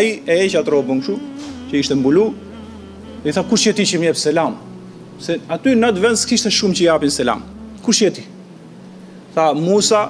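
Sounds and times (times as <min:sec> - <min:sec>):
steady low hum: 0:00.0 - 0:10.0
man drawing out a sound: 0:00.9 - 0:08.4.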